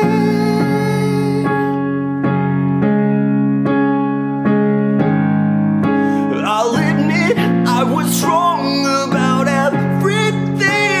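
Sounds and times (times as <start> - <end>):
man singing: 0.0 - 1.8, 6.2 - 11.0
electronic keyboard piano chords: 0.0 - 11.0.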